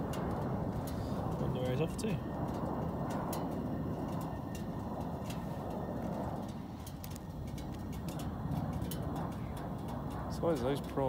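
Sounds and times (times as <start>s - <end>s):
propeller aircraft droning past: 0.0s - 11.0s.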